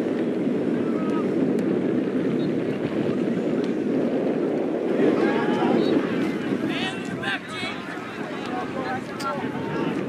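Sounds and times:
wind rush on microphone: 0.0s - 10.0s
distant voices: 2.2s - 10.0s.

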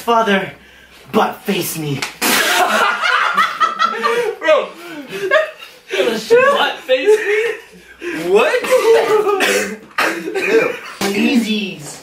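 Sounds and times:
young people laughing: 2.3s - 11.1s.

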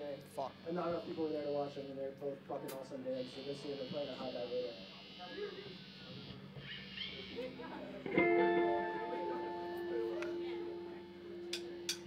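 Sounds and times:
guitar amplifier buzz: 0.0s - 12.0s.

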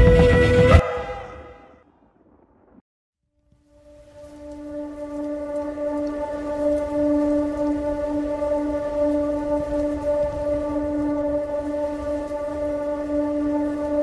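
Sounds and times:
low rumbling noise: 0.0s - 2.8s, 3.8s - 14.0s.

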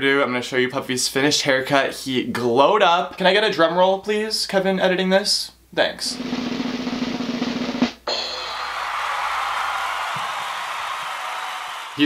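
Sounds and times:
snare drum roll: 6.1s - 10.5s
cymbal crash ringing: 8.1s - 9.2s.

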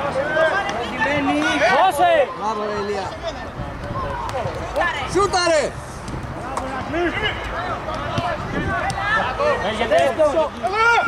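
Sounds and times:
footballers shouting: 0.0s - 11.0s.

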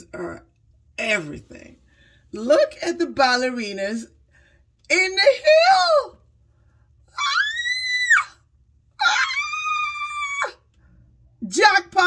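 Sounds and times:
woman squealing with delight: 9.0s - 10.6s.

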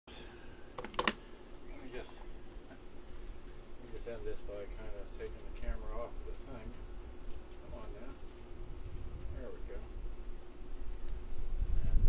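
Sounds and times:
low steady hum: 0.1s - 12.0s.

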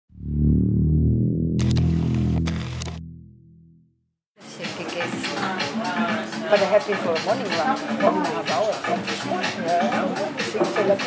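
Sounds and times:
low synthesizer chord: 0.1s - 4.1s.

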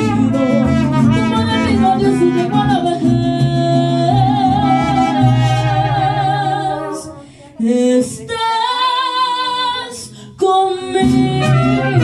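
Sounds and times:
mariachi band playing and singing: 0.0s - 12.0s.

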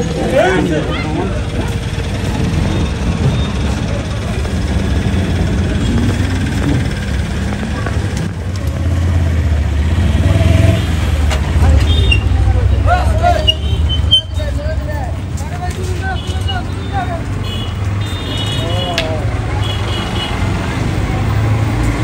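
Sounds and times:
people calling out: 0.0s - 2.1s, 11.6s - 14.6s
vehicle engines rumbling: 0.0s - 22.0s.

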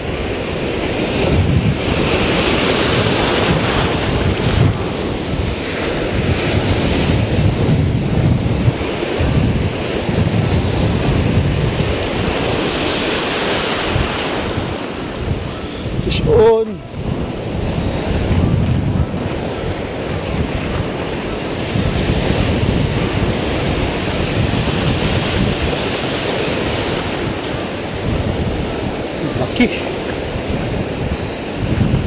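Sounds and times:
ocean surf breaking: 0.0s - 32.0s
wind buffeting microphone: 0.0s - 32.0s.

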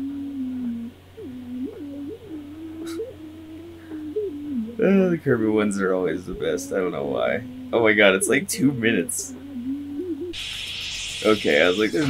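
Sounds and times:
cartoon voice humming: 0.0s - 5.2s, 9.2s - 10.4s.

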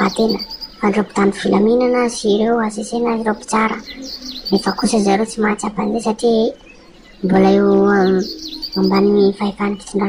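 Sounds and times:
person talking: 0.0s - 6.6s, 7.2s - 10.0s.

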